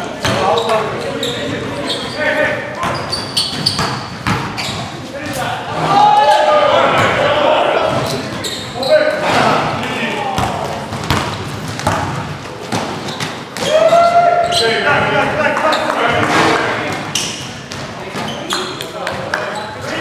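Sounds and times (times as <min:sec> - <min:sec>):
basketball bouncing on wooden floor: 0:02.8 - 0:04.7, 0:10.4 - 0:13.7, 0:17.3 - 0:18.7
players calling out: 0:04.6 - 0:11.0, 0:13.0 - 0:20.0.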